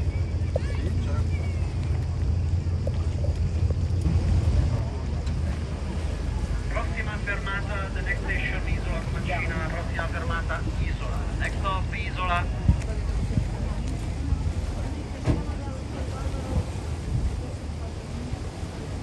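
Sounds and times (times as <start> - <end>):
wind on microphone: 0.0 - 6.8, 10.6 - 19.0
boat engine rumble: 0.0 - 19.0
people talking: 0.0 - 19.0.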